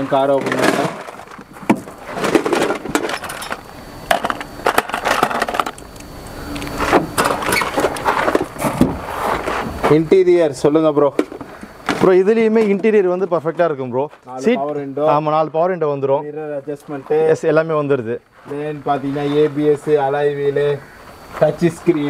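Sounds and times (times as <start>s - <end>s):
people talking: 0.0s - 1.1s, 9.8s - 11.3s, 11.9s - 22.0s.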